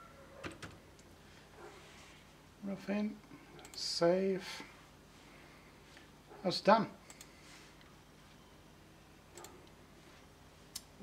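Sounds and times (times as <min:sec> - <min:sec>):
computer mouse clicks: 0:03.6 - 0:03.8, 0:07.1 - 0:07.9, 0:09.4 - 0:09.8.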